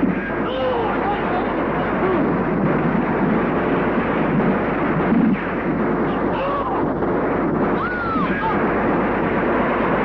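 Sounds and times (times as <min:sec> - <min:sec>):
dense continuous din: 0:00.0 - 0:10.0.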